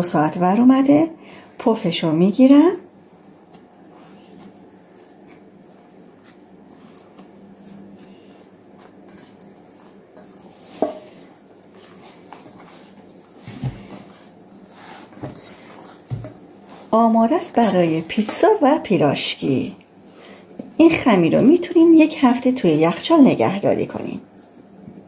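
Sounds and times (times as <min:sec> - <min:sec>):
dough being punched and folded: 0:03.1 - 0:18.6.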